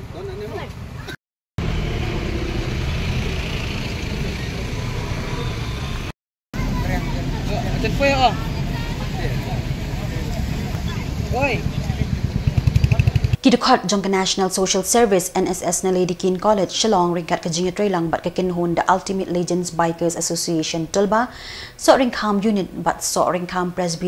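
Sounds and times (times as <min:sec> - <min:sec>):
low rumble of highway traffic: 0:00.0 - 0:13.4
bystanders' voices: 0:06.6 - 0:21.2.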